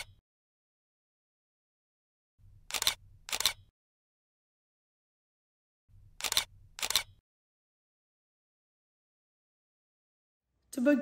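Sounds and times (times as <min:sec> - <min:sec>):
camera shutter clicks: 0:02.7 - 0:03.7, 0:06.2 - 0:07.2.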